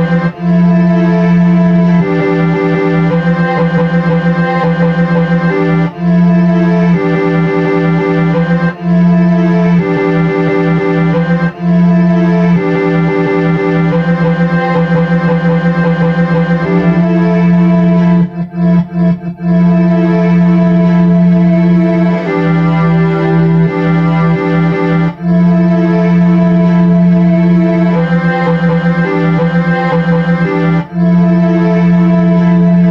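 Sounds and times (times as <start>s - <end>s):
keyboard chords: 0.0s - 32.9s
steady low keyboard note: 0.0s - 32.9s.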